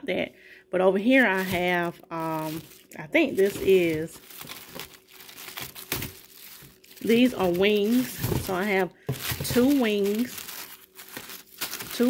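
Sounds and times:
plastic bags crinkling: 0:01.1 - 0:12.0.

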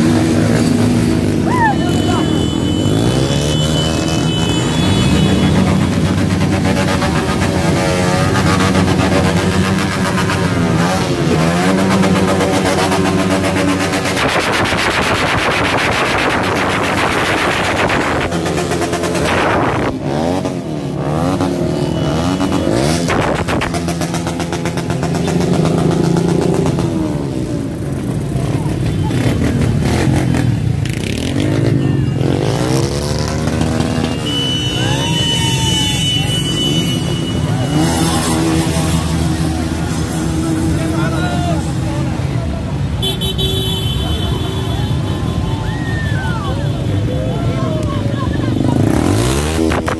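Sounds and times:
scooter engines revving past: 0:00.0 - 0:43.3, 0:43.9 - 0:49.9.

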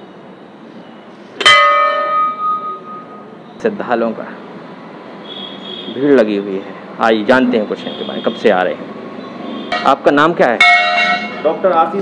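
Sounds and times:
temple bell ringing: 0:01.4 - 0:03.3.

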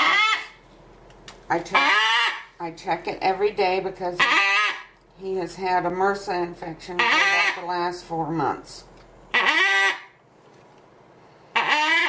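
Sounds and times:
macaw call: 0:00.0 - 0:00.6, 0:09.4 - 0:10.1, 0:11.6 - 0:12.0.

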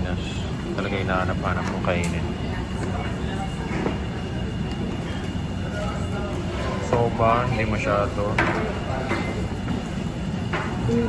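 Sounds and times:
faint voices talking: 0:00.0 - 0:11.0
restaurant background rumble: 0:00.0 - 0:11.0.

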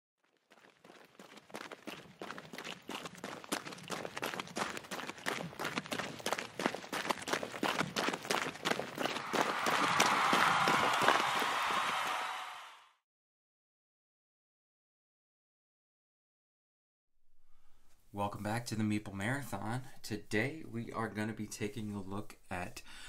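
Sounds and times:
running footsteps: 0:00.2 - 0:12.4.

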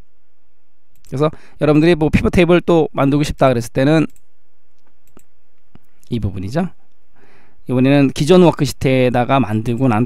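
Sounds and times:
low steady hum: 0:00.0 - 0:10.0
computer mouse clicks: 0:04.0 - 0:06.0.

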